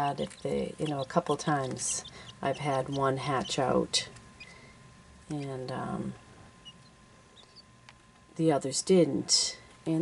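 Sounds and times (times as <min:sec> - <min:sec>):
chick peeping: 0:00.2 - 0:03.7, 0:06.6 - 0:07.7.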